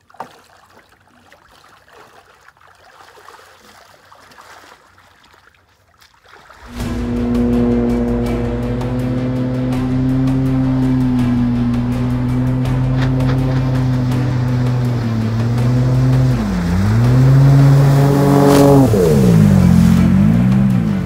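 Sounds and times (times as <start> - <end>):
rush of spray: 6.4 - 21.0
boat engine running: 6.6 - 21.0.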